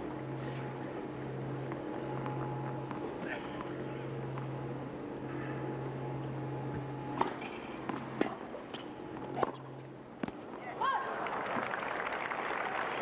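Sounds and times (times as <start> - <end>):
racket hitting tennis ball: 7.1 - 10.6
person shouting: 10.8 - 11.1
crowd cheering and applauding: 11.0 - 13.0.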